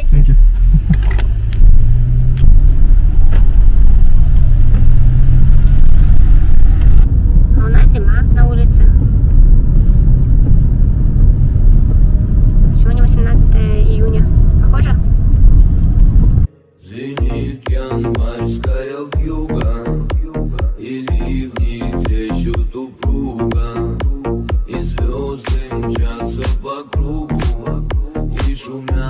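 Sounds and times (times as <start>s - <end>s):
car engine and tyres rumbling: 0.0s - 16.5s, 18.1s - 29.0s
voices: 12.8s - 15.0s.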